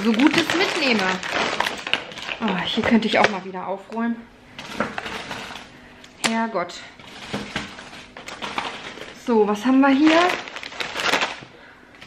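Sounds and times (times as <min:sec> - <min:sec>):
rummaging through a drawer: 0:07.0 - 0:11.2.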